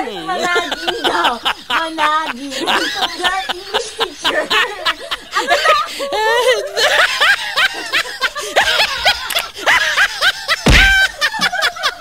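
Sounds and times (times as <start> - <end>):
women laughing hard: 0.0 - 12.0.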